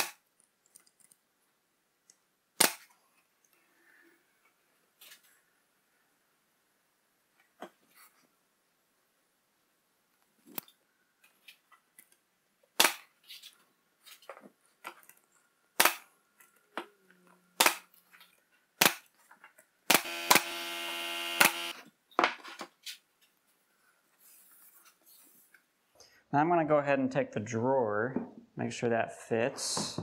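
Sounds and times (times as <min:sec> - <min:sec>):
nail gun shots into plywood: 0:02.6 - 0:02.8, 0:15.8 - 0:16.0, 0:19.9 - 0:20.5
steady whir: 0:20.0 - 0:21.7.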